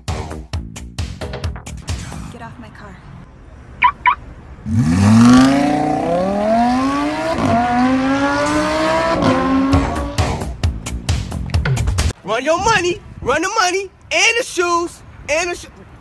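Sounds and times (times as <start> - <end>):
short high chirps: 3.8 - 4.2
sports car engine revving: 4.0 - 10.5.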